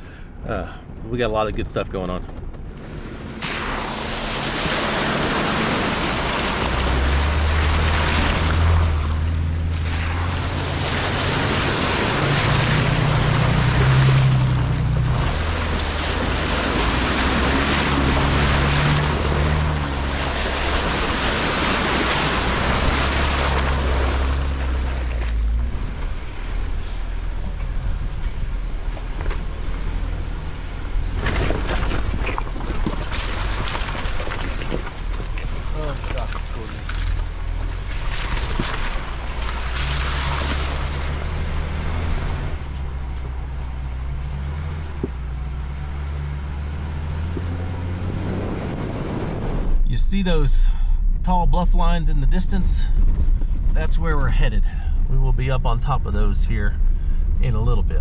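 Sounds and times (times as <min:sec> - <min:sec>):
car engine running: 0:01.2 - 0:58.0
tyre and wind noise: 0:01.5 - 0:50.0, 0:52.5 - 0:54.2
tyres splashing through muddy water: 0:02.6 - 0:58.0.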